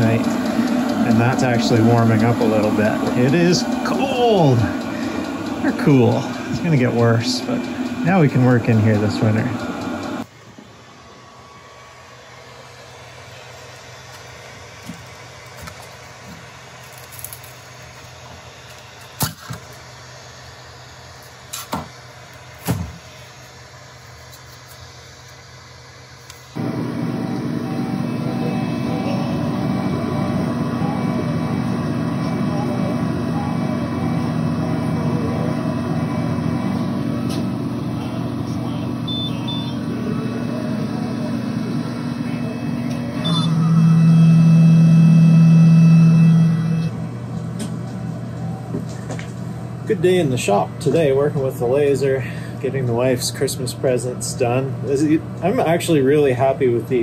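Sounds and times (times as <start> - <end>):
laser engraver exhaust fan whirring: 0.0 - 57.0.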